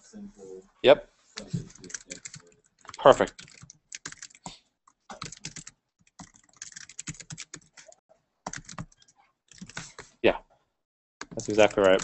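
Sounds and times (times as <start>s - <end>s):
typing on computer keyboard: 1.7s - 4.5s, 5.1s - 10.0s, 11.2s - 12.0s.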